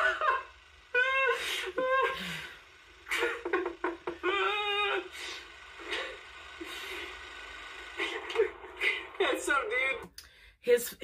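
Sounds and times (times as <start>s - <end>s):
man giggling: 3.1s - 5.0s.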